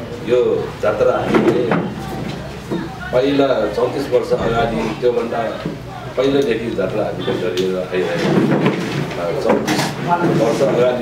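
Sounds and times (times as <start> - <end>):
man speaking: 4.4 - 5.4.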